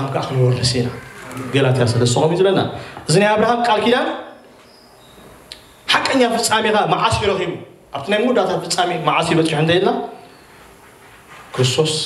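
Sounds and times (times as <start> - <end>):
man speaking into a microphone: 0.0 - 4.4, 5.9 - 10.2, 11.6 - 12.0
faint room hiss: 0.0 - 12.0.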